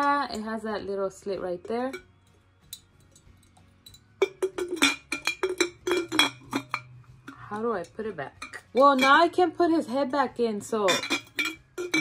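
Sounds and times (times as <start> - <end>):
ceramic lid clinking on teapot: 3.9 - 7.5, 8.4 - 9.3, 10.8 - 12.0.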